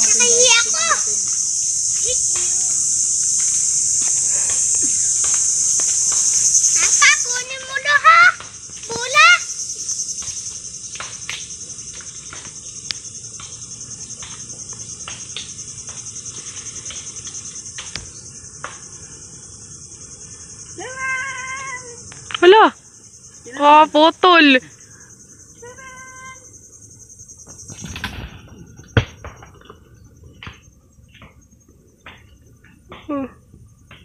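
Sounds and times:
high-pitched insect drone: 0:00.0 - 0:34.0.

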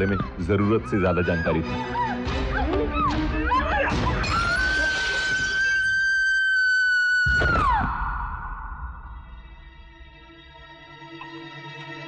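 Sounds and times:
woman screaming: 0:01.8 - 0:08.0.

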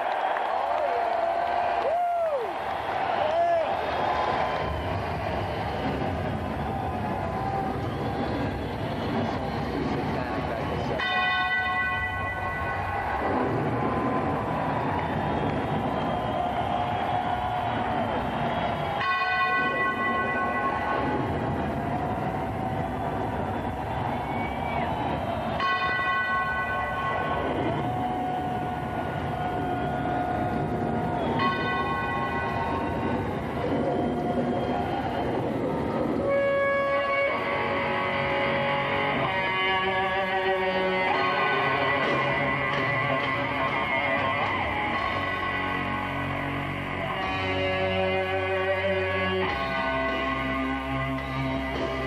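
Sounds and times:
crowd: 0:00.0 - 0:52.0
steady rushing noise: 0:01.5 - 0:11.0, 0:11.9 - 0:40.0
bell tolling: 0:10.9 - 0:13.8, 0:18.9 - 0:21.6, 0:25.5 - 0:27.9, 0:31.1 - 0:33.8.

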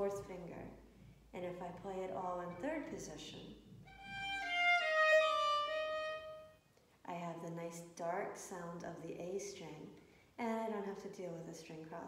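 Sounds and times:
solo violin playing: 0:03.8 - 0:06.6.

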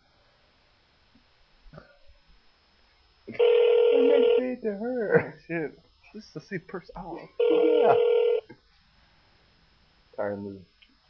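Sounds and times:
telephone ringing: 0:03.3 - 0:04.5, 0:07.4 - 0:08.5.

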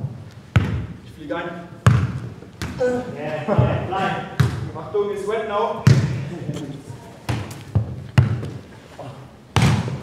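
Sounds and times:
football thudding on hard floor: 0:07.3 - 0:08.6, 0:09.6 - 0:10.0.

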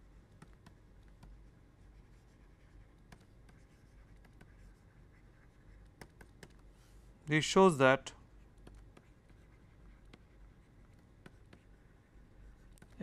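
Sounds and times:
stylus tapping on pen tablet: 0:00.4 - 0:01.4, 0:03.0 - 0:04.7, 0:05.8 - 0:06.6, 0:08.5 - 0:11.7.

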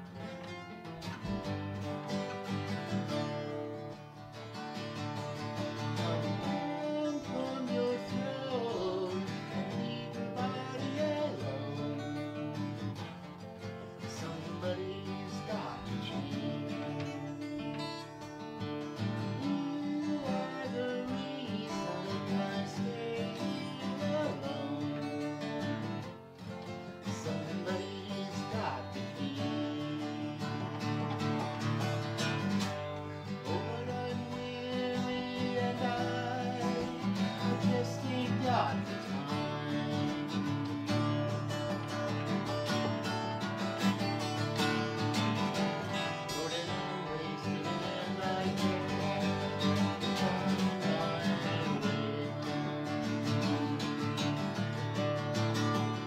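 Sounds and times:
acoustic guitar strumming: 0:00.0 - 0:56.0
man singing: 0:00.2 - 0:56.0.

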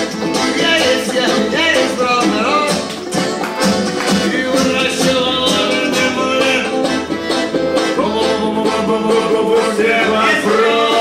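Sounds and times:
live band instrumental music: 0:00.0 - 0:11.0.

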